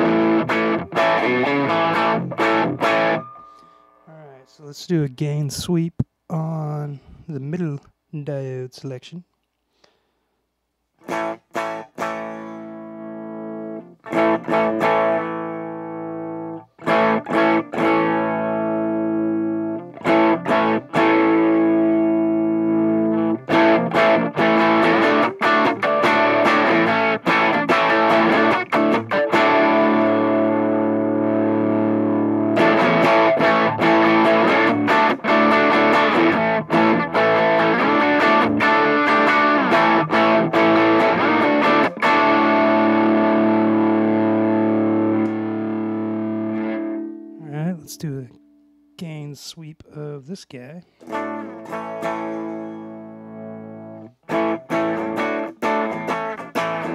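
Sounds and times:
overdriven electric guitar: 0.0 - 4.4, 11.0 - 48.9, 50.9 - 56.9.

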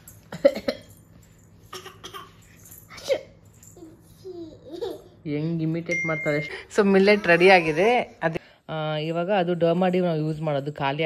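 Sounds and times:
toddler coughing: 0.3 - 1.0, 1.7 - 3.4.

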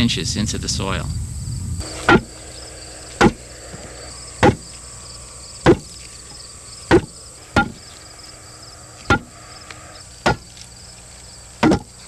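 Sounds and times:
sledgehammer striking wooden board: 2.0 - 2.3, 3.2 - 3.4, 4.4 - 4.6, 5.6 - 5.9, 6.9 - 7.8, 9.1 - 9.3, 10.2 - 10.5, 11.6 - 11.9.

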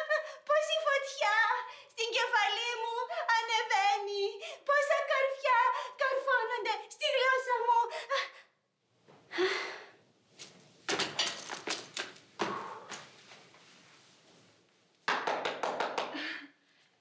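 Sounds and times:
small group clapping: 15.0 - 16.5.

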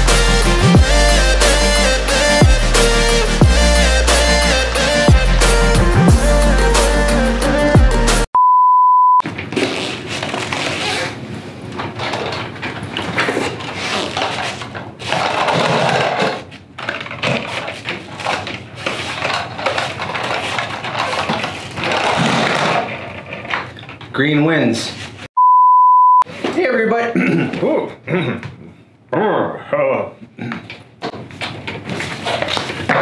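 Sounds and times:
high-pitched beep: 8.4 - 9.2, 25.4 - 26.2
papers rustling and objects clattering: 9.2 - 24.2, 30.7 - 33.0.

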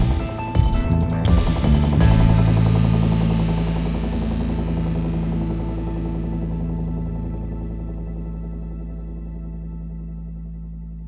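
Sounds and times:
drum and cymbal hits: 0.0 - 4.3
low held chord ringing: 0.0 - 11.0.

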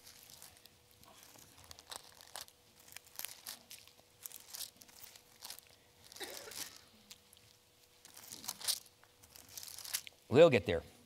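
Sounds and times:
book pages turning: 0.0 - 10.2.

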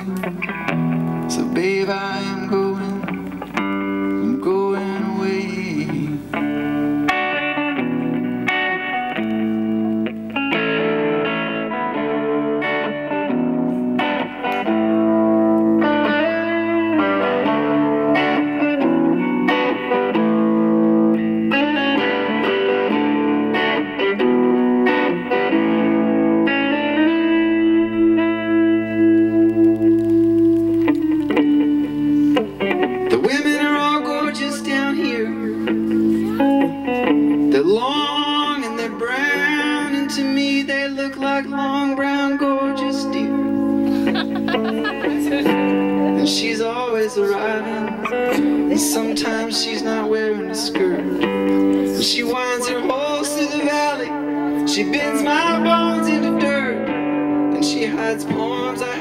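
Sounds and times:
electric guitar chords: 0.0 - 59.0.

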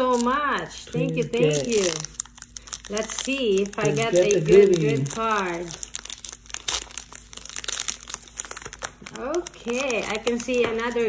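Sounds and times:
foil wrapper crinkling and tearing: 0.0 - 11.0.

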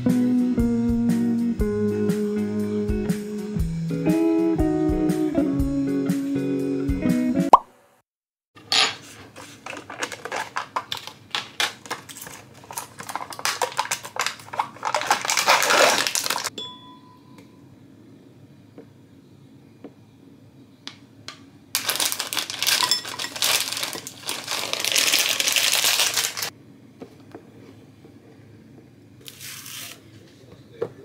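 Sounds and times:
guitar music: 0.0 - 7.5
plastic tub clicks and rustles: 9.6 - 16.5, 21.8 - 26.5.

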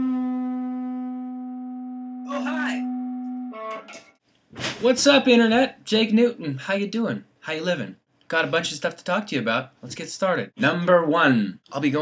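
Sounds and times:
electric guitar sustained note: 0.0 - 4.0.

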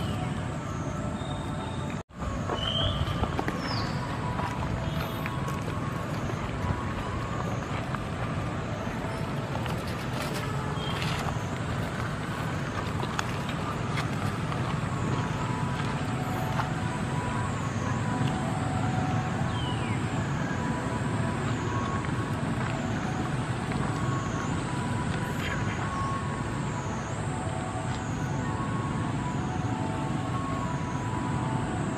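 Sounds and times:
distant road traffic rumble: 0.0 - 31.9.

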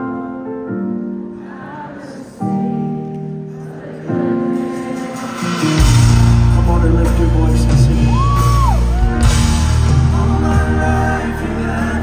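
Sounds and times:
live band sustained chords: 0.0 - 12.0.

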